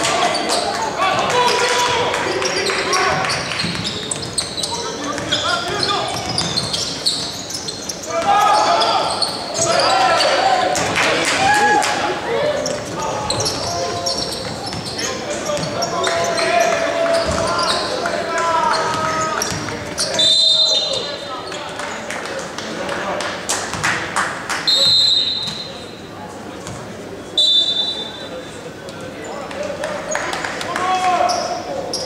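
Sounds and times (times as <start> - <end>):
players calling out: 0.0 - 21.6
ball bouncing on wooden court: 5.1 - 6.8.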